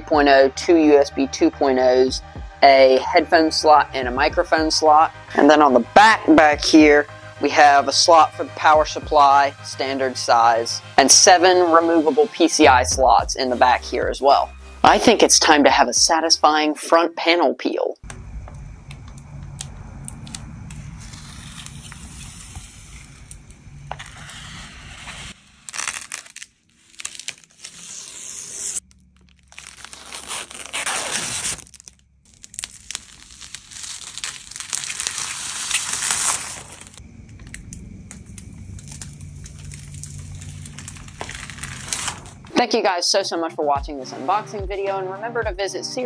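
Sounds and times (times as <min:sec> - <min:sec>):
plastic film peeling: 0:19.6 - 0:42.5
plastic film crinkling: 0:20.1 - 0:42.5.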